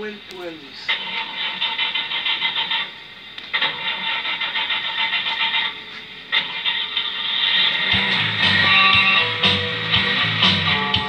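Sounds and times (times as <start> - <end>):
vinyl record crackle and hiss: 0.0 - 11.0.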